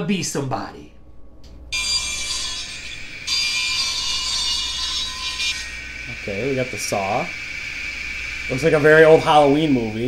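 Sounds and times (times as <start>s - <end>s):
harsh hissing grinding through speakers: 5.8s - 10.0s.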